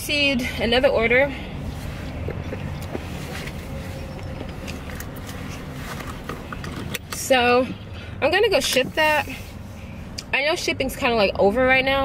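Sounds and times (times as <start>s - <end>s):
car engine idling: 0.0s - 11.6s.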